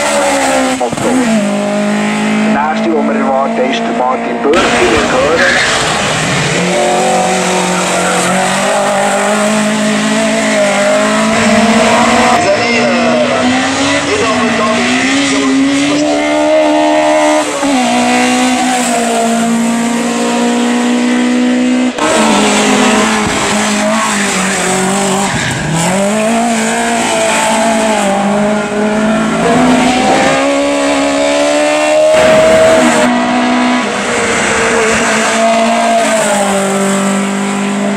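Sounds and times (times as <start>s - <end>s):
race car engine revving: 0.0s - 37.9s.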